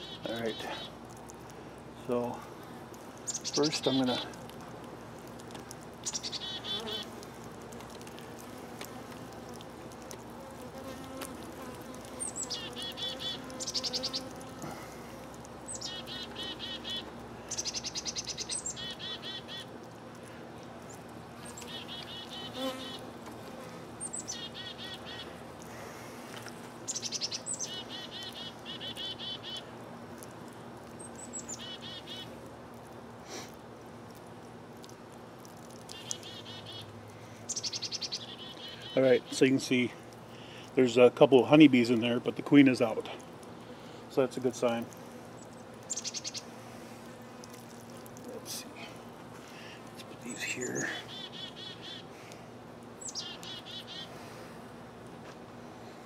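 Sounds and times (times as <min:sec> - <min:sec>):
songbird singing: 0:00.0 - 0:01.3, 0:03.2 - 0:04.4, 0:05.6 - 0:07.2, 0:11.6 - 0:14.4, 0:15.6 - 0:19.7, 0:20.8 - 0:23.1, 0:24.0 - 0:25.4, 0:26.9 - 0:29.7, 0:30.9 - 0:32.4, 0:35.7 - 0:36.9, 0:37.5 - 0:40.9, 0:44.6 - 0:46.5, 0:50.0 - 0:52.1, 0:53.0 - 0:54.1
bees buzzing: 0:03.3 - 0:29.8.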